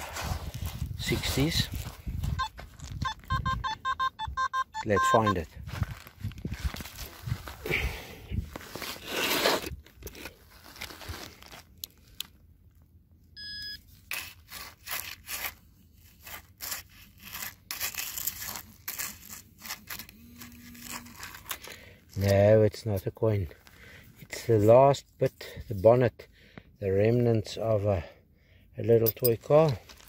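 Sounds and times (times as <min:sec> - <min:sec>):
sand and pebbles crunching: 0:00.0 - 0:03.0, 0:05.0 - 0:09.7
short high electronic beep: 0:02.4 - 0:05.4.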